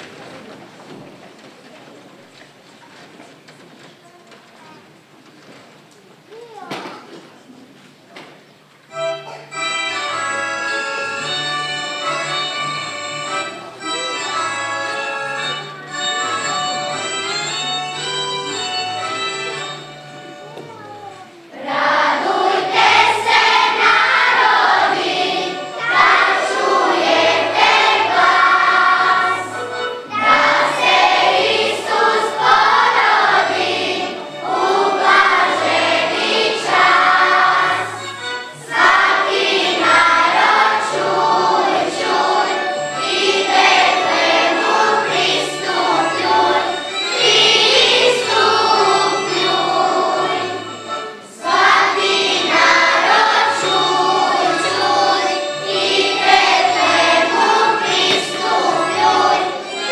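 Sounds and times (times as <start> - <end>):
children's choir singing: 0.0 - 1.2, 8.9 - 20.6, 21.5 - 59.9
instrumental accompaniment: 8.8 - 59.9.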